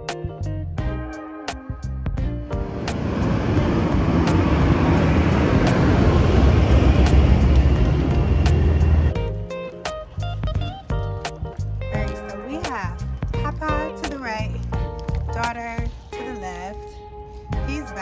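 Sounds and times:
guitar music: 0:00.0 - 0:18.0
vehicle rushing past: 0:02.5 - 0:09.2.

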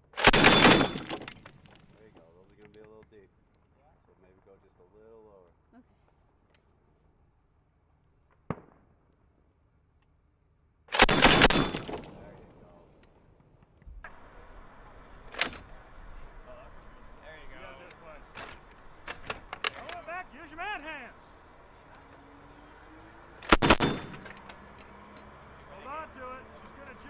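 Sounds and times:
sharp cracks: 0:00.0 - 0:02.9, 0:10.9 - 0:14.2, 0:23.4 - 0:24.7
grenade launcher firing burst: 0:00.2 - 0:01.3, 0:10.9 - 0:12.2, 0:23.5 - 0:24.3
voices: 0:01.9 - 0:06.0, 0:11.7 - 0:13.1, 0:14.1 - 0:23.1, 0:23.9 - 0:27.0.

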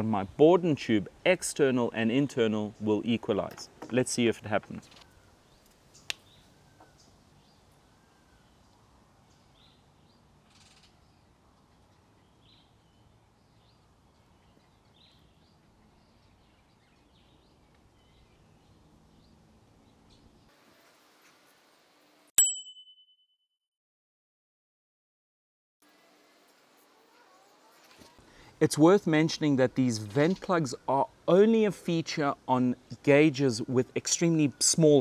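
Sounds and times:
sharp bright ding: 0:22.4 - 0:23.2.

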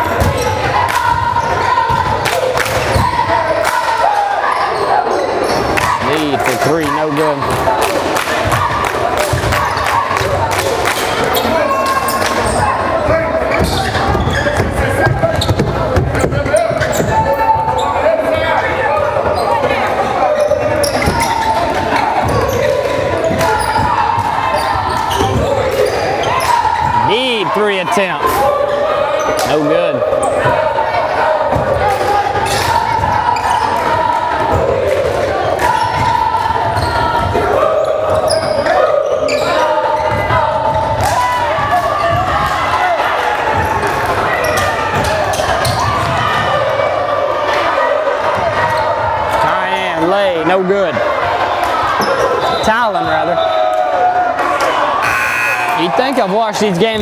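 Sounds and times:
voices echoing in gym: 0:00.0 - 0:57.0.

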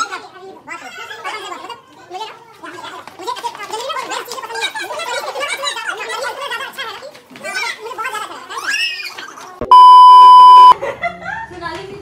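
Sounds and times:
electronic beep tone: 0:09.6 - 0:10.8.

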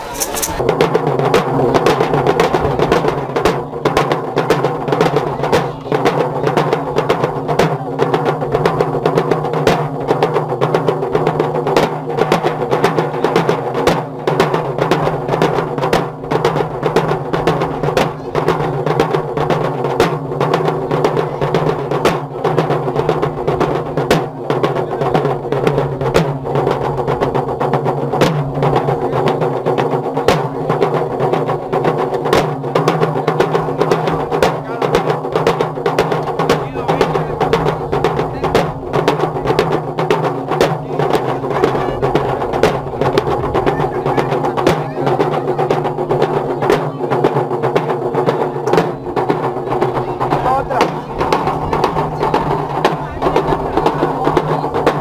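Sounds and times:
drums beating fast rhythm: 0:00.0 - 0:55.0.

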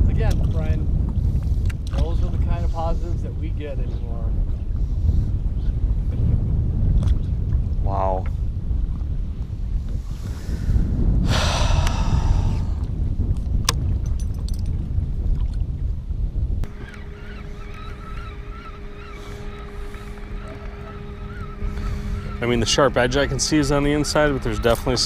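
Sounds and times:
wind rumbling on microphone: 0:00.0 - 0:25.0
water against hull: 0:11.4 - 0:16.0, 0:16.6 - 0:25.0
steady hum with held tones: 0:16.6 - 0:25.0.

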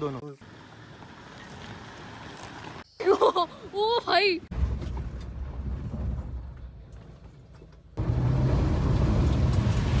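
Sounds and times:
engine running under load: 0:08.0 - 0:10.0.

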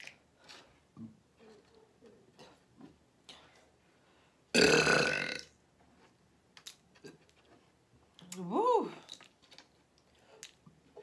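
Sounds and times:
woman burping loudly: 0:04.5 - 0:05.6.

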